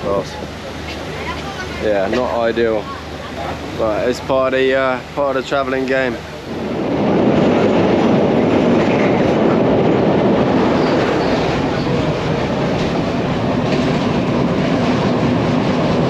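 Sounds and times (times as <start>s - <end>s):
train wheels rumbling on rails: 3.4s - 16.0s.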